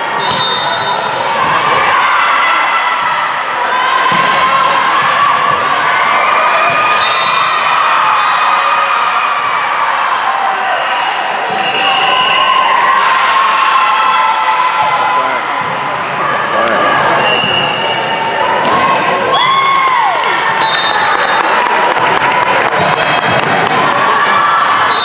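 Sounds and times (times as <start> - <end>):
sneakers squeaking on court: 17.2 - 19.0.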